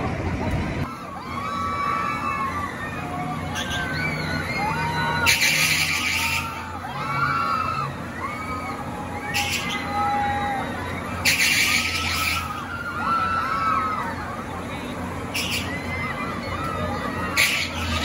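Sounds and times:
crowd shrieks and shouts: 0:00.0 - 0:18.0
riders screaming: 0:00.9 - 0:18.0.

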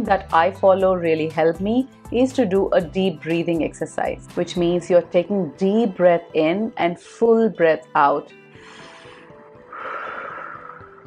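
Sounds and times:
soft background music: 0:00.0 - 0:11.0
woman breathing deeply: 0:08.5 - 0:11.0.

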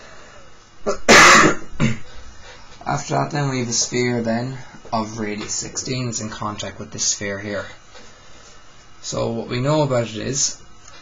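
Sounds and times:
person coughing: 0:00.8 - 0:02.1.

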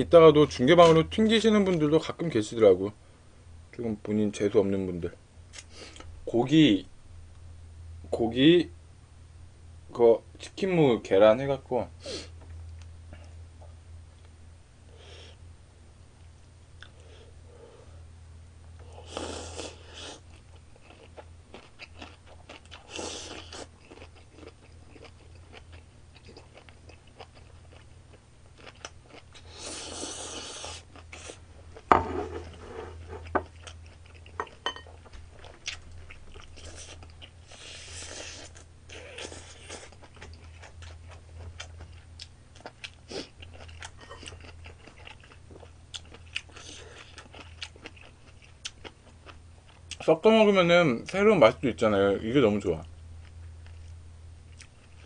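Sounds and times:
steady low hum: 0:00.0 - 0:55.0
person chewing and crunching food: 0:18.8 - 0:50.1, 0:52.9 - 0:55.0.

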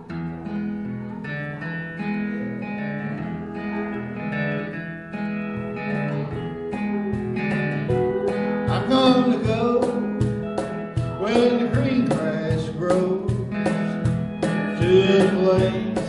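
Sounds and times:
acoustic guitar strumming: 0:00.0 - 0:16.0
steel guitar sliding notes: 0:00.0 - 0:16.0.

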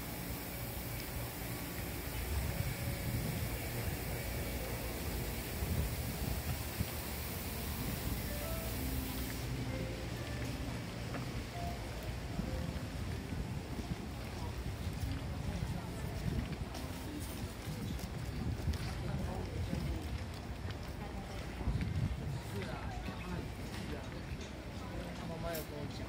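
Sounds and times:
background music: 0:00.0 - 0:13.8
wind rumble on microphone: 0:00.7 - 0:08.6, 0:11.2 - 0:25.0.

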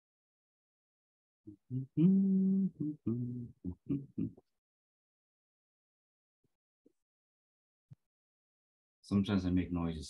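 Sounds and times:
man humming: 0:01.5 - 0:04.4.

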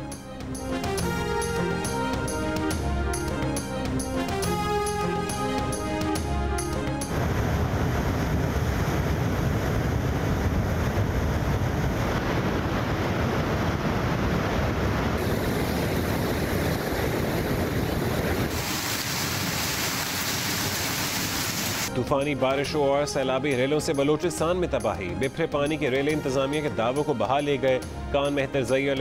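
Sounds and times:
wind buffeting microphone: 0:07.0 - 0:21.8
rushing floodwater: 0:07.1 - 0:21.9.

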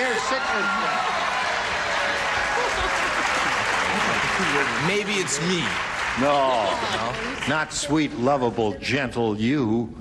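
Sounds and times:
audience applauding: 0:00.0 - 0:08.1.

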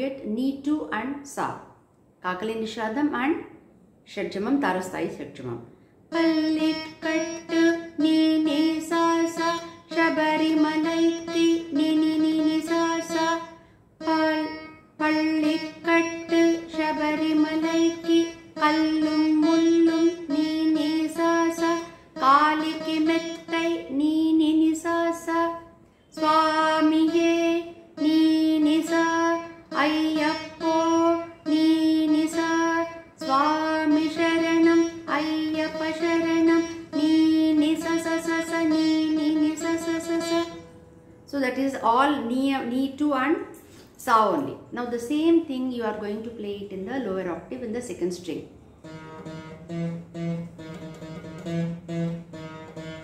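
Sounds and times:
plucked veena with sliding bends: 0:04.8 - 0:53.0.

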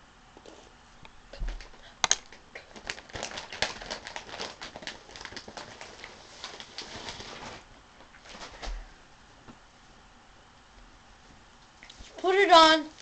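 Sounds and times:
plastic crinkling and clicking: 0:01.3 - 0:08.7.

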